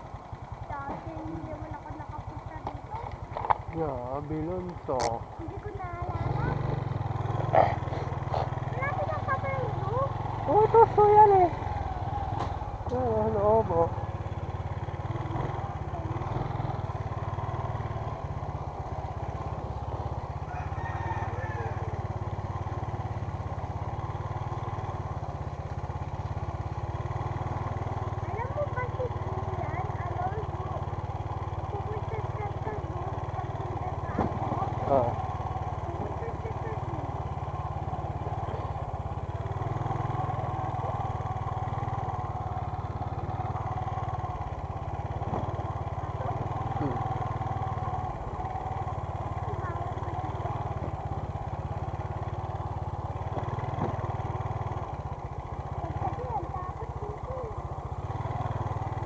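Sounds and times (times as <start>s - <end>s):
small motorcycle engine running: 0.0s - 59.0s.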